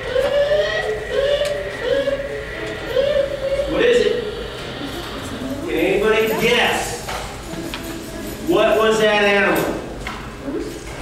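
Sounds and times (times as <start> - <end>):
beaver whining call: 0.0 - 5.5.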